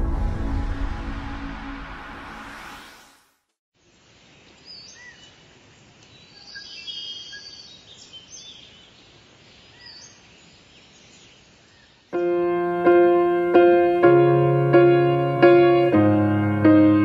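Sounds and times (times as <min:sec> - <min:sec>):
faint outdoor hiss: 0:03.8 - 0:16.0
small birds chirping: 0:04.2 - 0:12.2.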